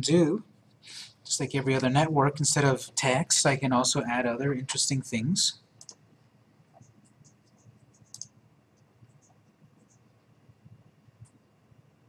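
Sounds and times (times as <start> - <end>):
faint mouse clicks: 5.8 - 6.0, 6.8 - 10.1.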